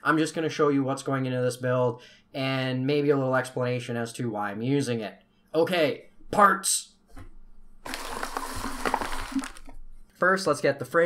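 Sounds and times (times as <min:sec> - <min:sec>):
plastic packaging crinkling: 0:07.8 - 0:10.0.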